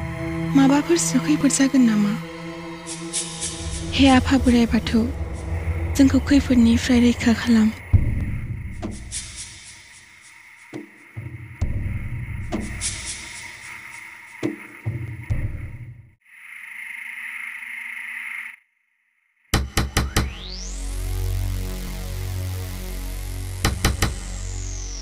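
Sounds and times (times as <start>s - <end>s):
high shimmer: 0.0s - 7.9s
deep booming swells: 3.0s - 9.5s
steady hiss: 5.4s - 15.2s.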